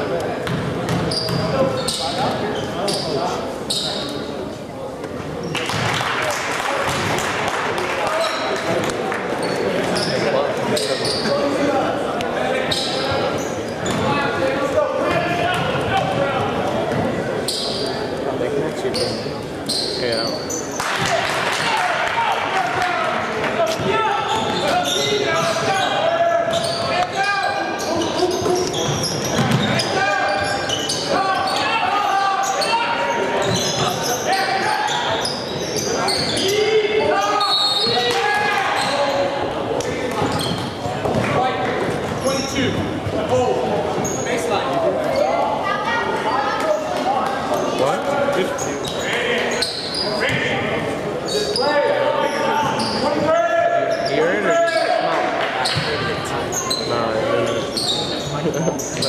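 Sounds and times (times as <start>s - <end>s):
crowd and player voices echoing: 0.0s - 59.0s.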